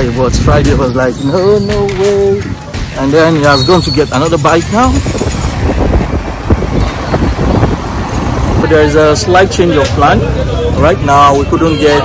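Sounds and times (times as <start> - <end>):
road and wind noise: 0.0 - 12.0.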